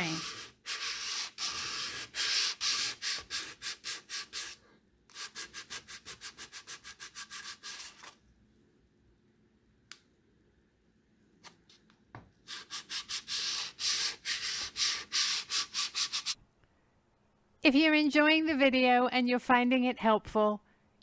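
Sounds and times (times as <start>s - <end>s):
sandpaper rasping on wood: 0.0s - 8.1s, 12.5s - 16.4s.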